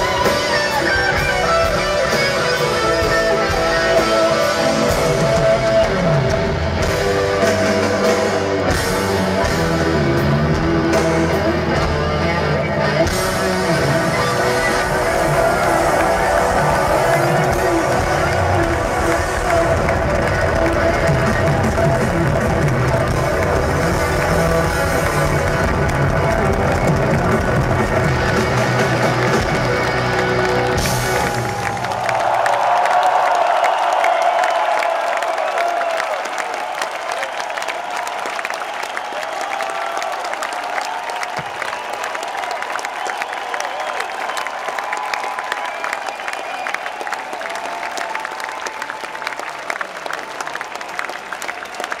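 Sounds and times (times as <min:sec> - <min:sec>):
live rock band playing: 0:00.0 - 0:32.3
crowd cheering and applauding: 0:00.0 - 0:52.0.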